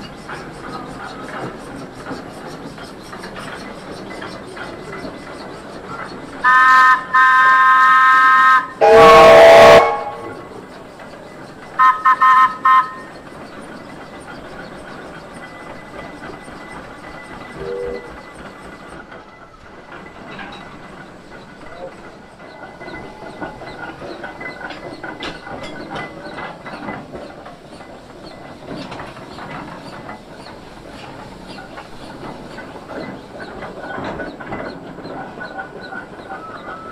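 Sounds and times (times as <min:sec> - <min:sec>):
high chime-like steam whistle: 0:06.4 - 0:10.4, 0:11.8 - 0:13.1
deep steam whistle: 0:06.4 - 0:10.5, 0:11.8 - 0:13.1.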